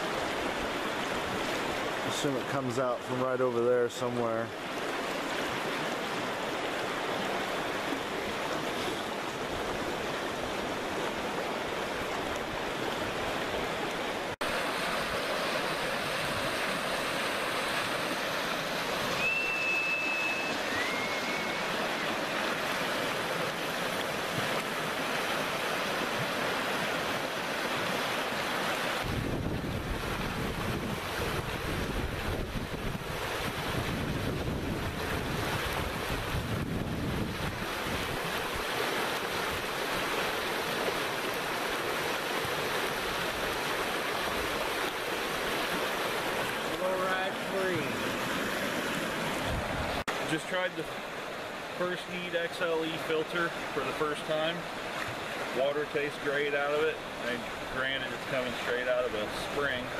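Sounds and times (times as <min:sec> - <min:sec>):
water rushing: 0:00.0 - 0:59.9
short high whistle: 0:19.1 - 0:21.7
wind buffeting microphone: 0:29.0 - 0:38.4, 0:49.2 - 0:50.0.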